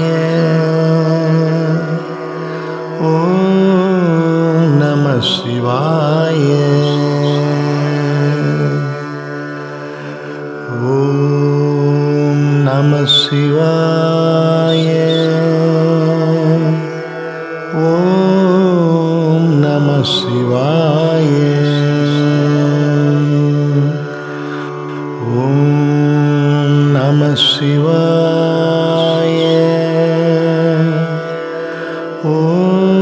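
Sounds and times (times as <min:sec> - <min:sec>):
devotional singing: 0:00.0 - 0:09.1, 0:10.7 - 0:17.0, 0:17.7 - 0:24.1, 0:25.2 - 0:33.0
steady drone: 0:00.0 - 0:33.0.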